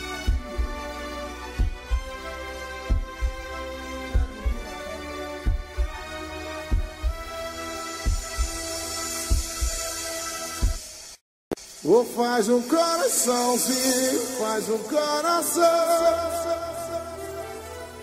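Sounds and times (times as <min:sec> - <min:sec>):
heavy bass drum hits: 0:06.7 - 0:07.4, 0:08.0 - 0:10.0.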